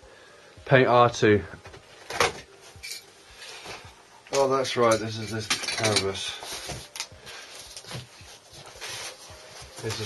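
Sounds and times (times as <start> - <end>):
cardboard and paper rustling: 6.3 - 10.0.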